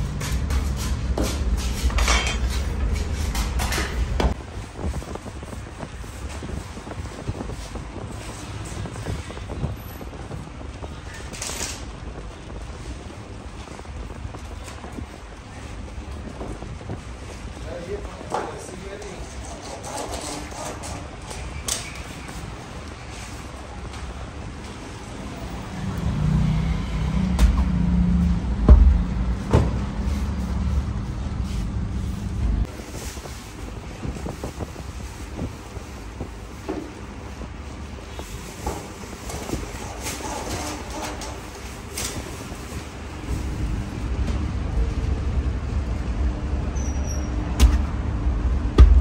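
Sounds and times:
low rumbling background noise: 0.0s - 49.0s
sharp knock: 48.8s - 49.0s.

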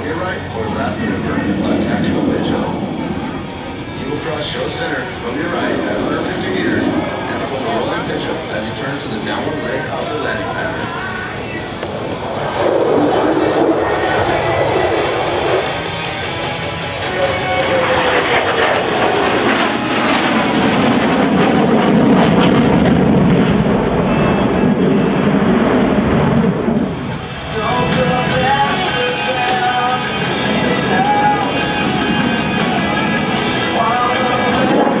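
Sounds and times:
music: 0.0s - 21.0s, 26.9s - 35.0s
fighter jet engine roar: 0.0s - 35.0s.

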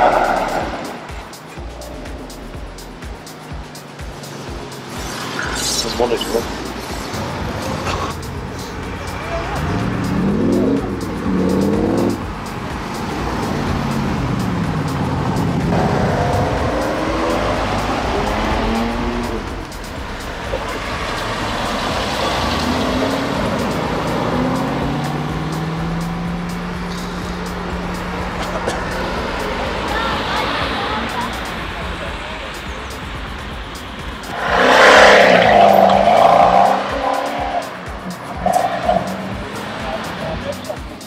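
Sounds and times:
performance cars accelerating: 0.0s - 41.0s.

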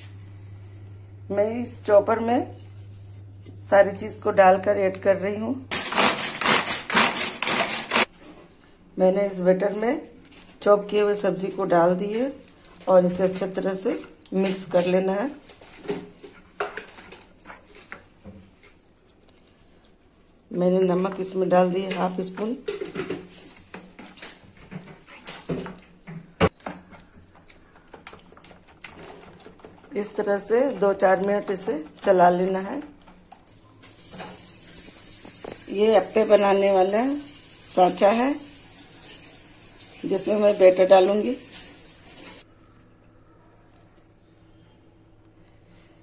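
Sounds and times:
spoon stirring thick batter: 12.6s - 32.6s.

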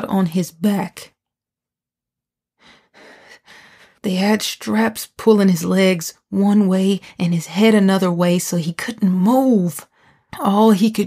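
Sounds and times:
person breathing in: 2.6s - 4.0s.

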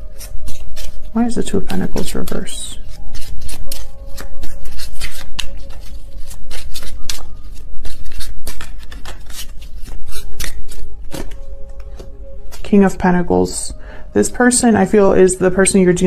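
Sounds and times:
cards being shuffled: 0.0s - 12.6s
faint background music: 0.0s - 16.0s.

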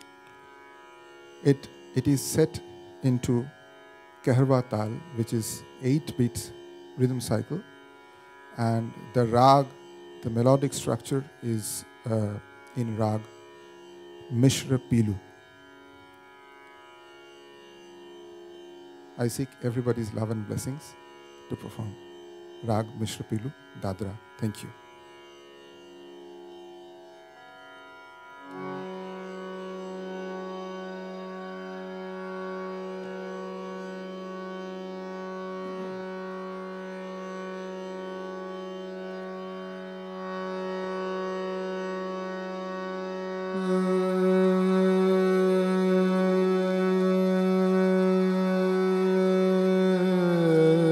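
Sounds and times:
harmonium drone chord: 0.0s - 50.9s.

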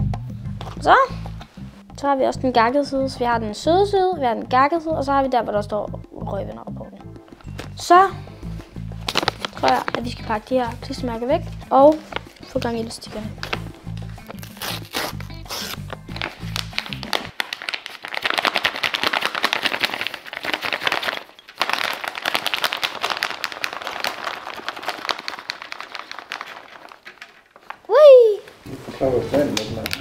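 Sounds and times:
background music with beat: 0.0s - 17.3s
paper bag crinkling: 9.0s - 10.8s, 11.9s - 27.9s.

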